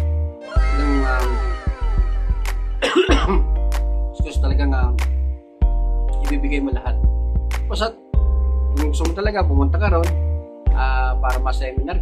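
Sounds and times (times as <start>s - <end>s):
background music with low bass: 0.0s - 12.0s
man coughing: 2.8s - 3.5s.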